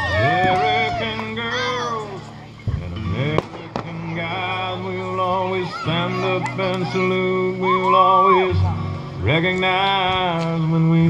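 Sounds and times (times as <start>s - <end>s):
fireworks exploding: 0.0s - 2.1s, 2.7s - 7.3s
music: 0.0s - 11.0s.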